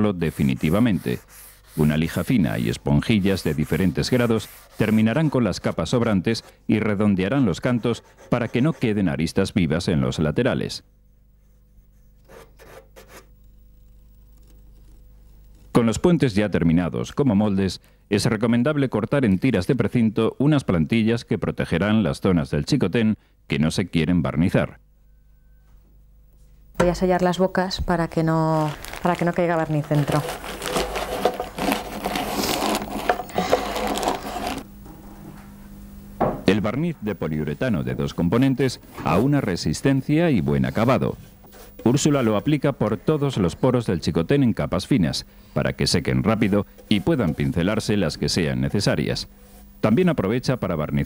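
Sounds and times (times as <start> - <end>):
low steady hum: 0.0 - 51.0
sandpaper rubbing on wood: 0.2 - 5.7
packing tape crinkling: 28.5 - 34.7.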